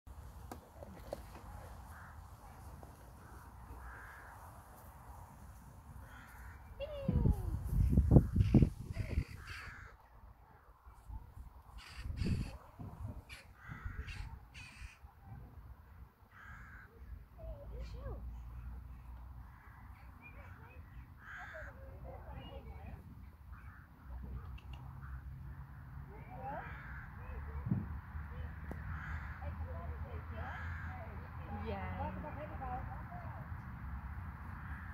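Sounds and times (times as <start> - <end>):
crows cawing: 1.8 - 4.9, 6.0 - 6.8, 8.2 - 10.1, 11.7 - 12.6, 13.3 - 15.1, 16.3 - 17.2, 18.6 - 21.9, 23.5 - 24.0, 24.9 - 27.4, 28.6 - 31.2, 34.5 - 34.9
wind rumble on microphone: 6.0 - 9.9, 11.0 - 14.6, 27.5 - 28.4.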